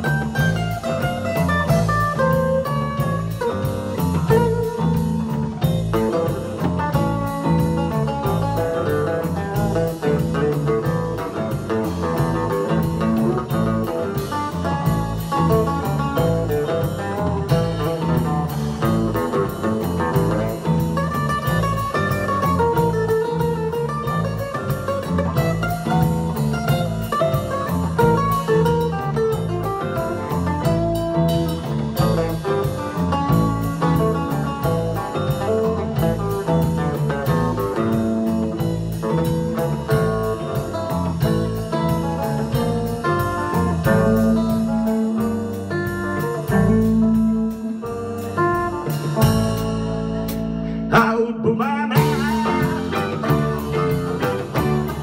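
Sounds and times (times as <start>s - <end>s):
bass guitar: 0.0s - 55.0s
drum kit: 0.0s - 55.0s
guitar melody: 0.0s - 55.0s
strummed acoustic guitar: 0.0s - 55.0s.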